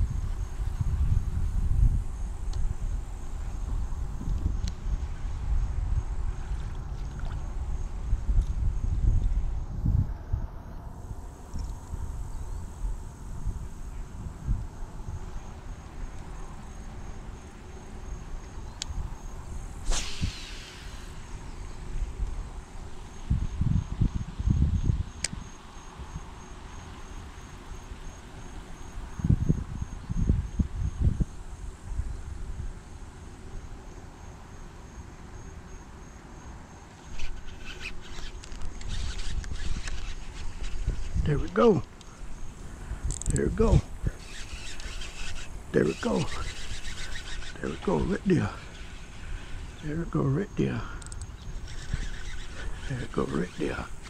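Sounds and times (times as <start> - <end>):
wind buffeting microphone: 0.0 - 33.1, 37.2 - 54.0
insects chirping: 0.0 - 54.0
falling swish: 19.8 - 21.2.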